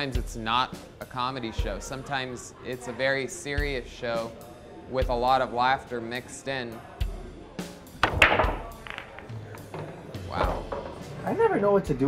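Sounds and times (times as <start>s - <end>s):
background music: 0.0s - 12.0s
cue ball cracking into rack: 8.0s - 11.1s
pool balls clattering: 8.0s - 11.3s.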